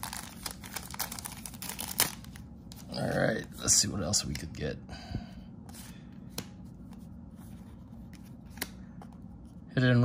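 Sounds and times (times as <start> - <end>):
low steady hum: 0.0 - 10.0
cards sliding and rubbing: 5.7 - 9.6.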